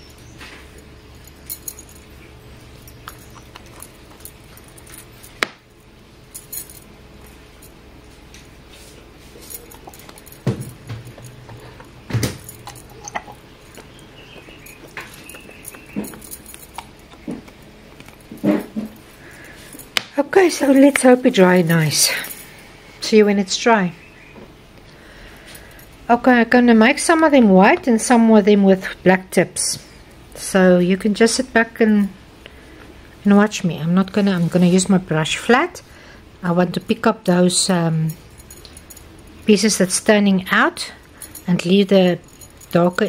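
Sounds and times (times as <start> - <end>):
metal bangles clinking: 1.1 - 7.8, 9.2 - 22.6, 38.0 - 39.9, 41.0 - 43.0.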